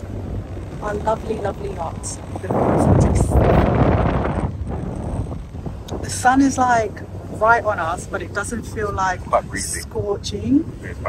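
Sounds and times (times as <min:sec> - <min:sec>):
low engine hum: 0:00.0 - 0:11.0
wind buffeting microphone: 0:00.0 - 0:11.0.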